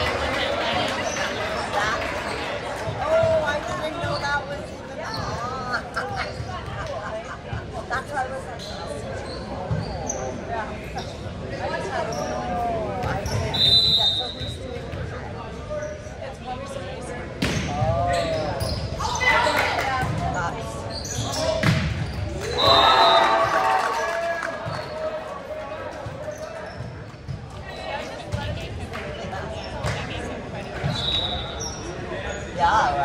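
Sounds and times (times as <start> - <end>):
sneakers squeaking on hardwood: 9.2 - 10.4
referee's whistle: 13.3 - 14.6, 22.5 - 23.4, 30.9 - 31.8.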